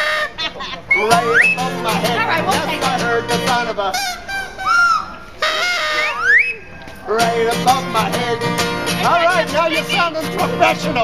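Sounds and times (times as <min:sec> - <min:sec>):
whistle tone: 0:00.9 - 0:01.7, 0:04.0 - 0:06.8.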